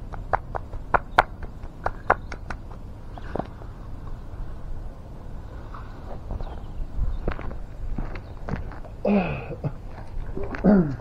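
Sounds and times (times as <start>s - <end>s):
footsteps crunching on gravel: 6.1s - 9.0s.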